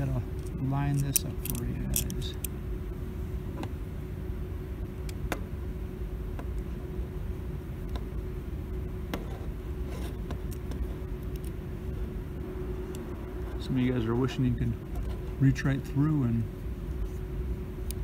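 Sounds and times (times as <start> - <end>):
faint constant tone: 0.0 - 18.0
low background hum: 0.0 - 18.0
small plastic and metal clicks: 0.4 - 2.6.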